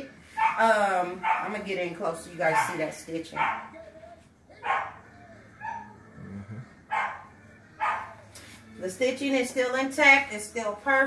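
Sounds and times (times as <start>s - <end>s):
dog barking: 0.4s - 0.6s, 1.2s - 1.6s, 2.5s - 3.8s, 4.6s - 6.0s, 6.9s - 8.2s.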